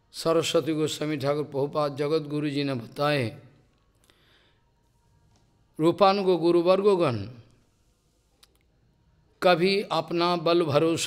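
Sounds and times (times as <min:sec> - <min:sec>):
man speaking: 0:00.1 - 0:03.6, 0:05.8 - 0:07.5, 0:09.4 - 0:11.0.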